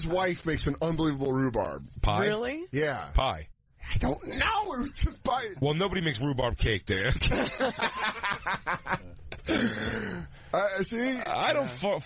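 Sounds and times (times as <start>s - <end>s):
men chuckling: 7.2s - 10.2s.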